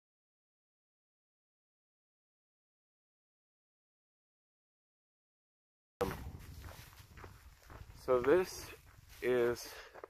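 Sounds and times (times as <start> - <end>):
low microphone rumble: 6.0 - 9.2
footsteps on a trail: 6.0 - 10.0.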